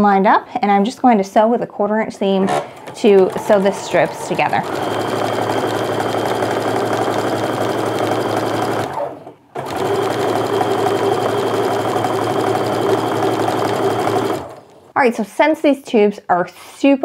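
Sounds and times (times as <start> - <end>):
sewing machine running: 2.1 - 14.9.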